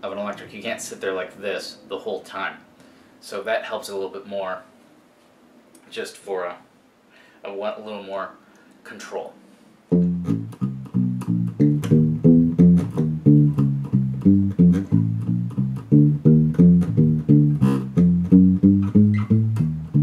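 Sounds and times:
muted electric bass walking line: 9.9s - 20.0s.

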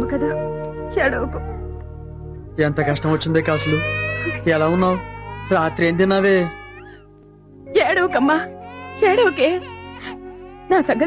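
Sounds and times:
background music: 0.0s - 11.0s
infant crying: 2.6s - 7.1s, 8.5s - 11.0s.

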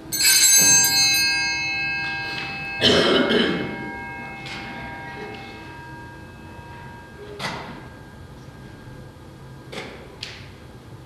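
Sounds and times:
altar bells ringing: 0.0s - 9.8s
person coughing: 2.8s - 3.7s.

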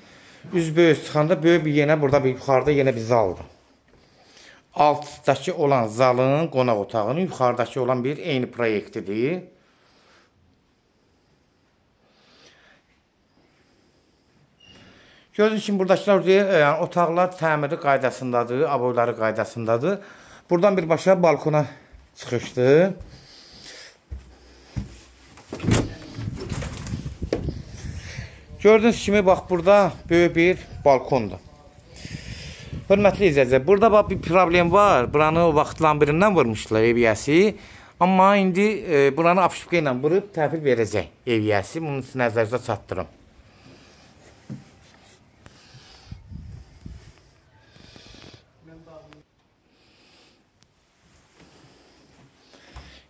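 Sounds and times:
faint footsteps: 21.8s - 34.4s, 43.2s - 47.5s
door swinging open rumble: 25.6s - 27.7s.

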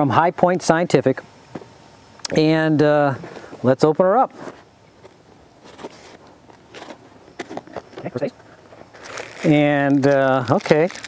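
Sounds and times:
cardboard box scraping and rustling: 5.6s - 8.0s.

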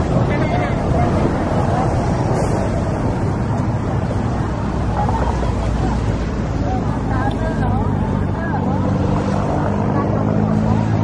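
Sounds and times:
vehicle engines humming: 0.0s - 11.0s.

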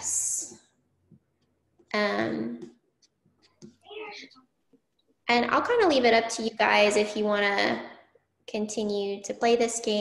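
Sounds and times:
person's voice over video call: 3.9s - 4.4s.

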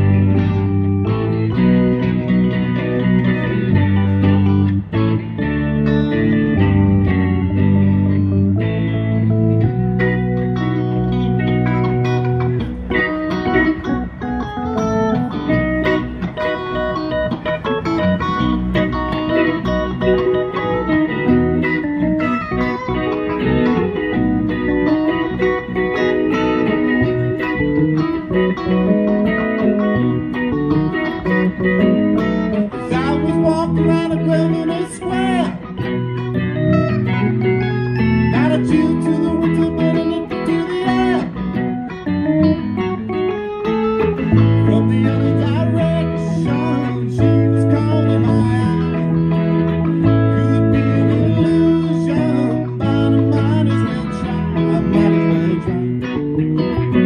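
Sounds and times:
live band playing instrumental: 0.0s - 57.0s.

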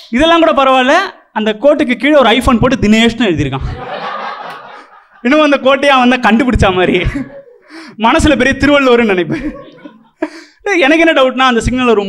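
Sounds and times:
audience laughing: 3.7s - 5.3s, 6.4s - 7.6s, 9.3s - 10.2s.

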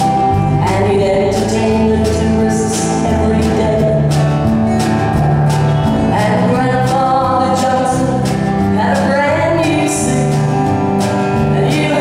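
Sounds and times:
acoustic guitar: 0.0s - 12.0s
band playing: 0.0s - 12.0s
woman singing a country song: 0.0s - 12.0s.

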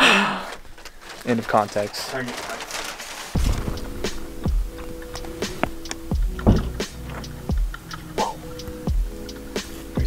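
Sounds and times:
beat with deep bass thumps: 3.4s - 10.0s.

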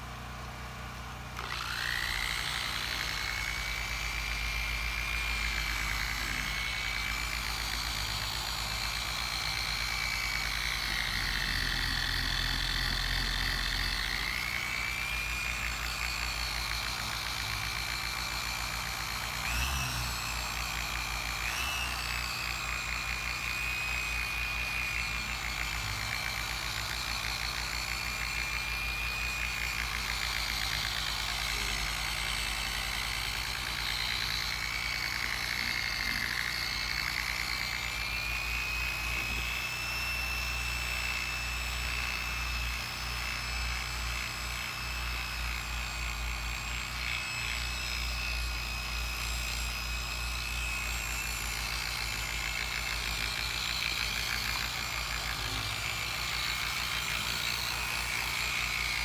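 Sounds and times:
polisher motor whining: 0.0s - 59.0s.

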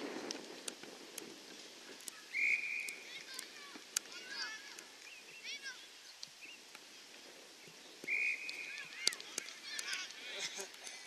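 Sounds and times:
faint distant calls: 2.1s - 10.2s
high whistle: 2.3s - 3.0s, 8.0s - 8.8s.

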